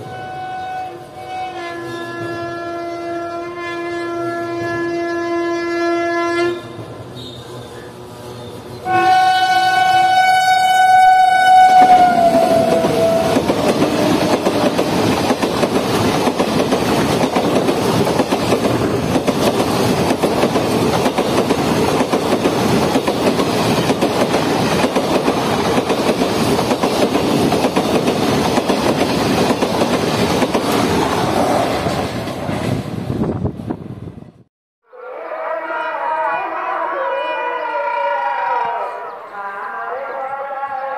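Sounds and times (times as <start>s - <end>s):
electric locomotive horn: 0.0s - 7.6s, 8.8s - 14.7s
train wheels on rail roaring: 3.9s - 34.4s.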